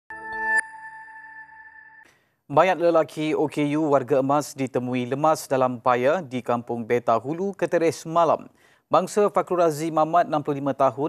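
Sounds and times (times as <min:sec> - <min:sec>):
bright ringing tone: 0:00.1 - 0:02.1.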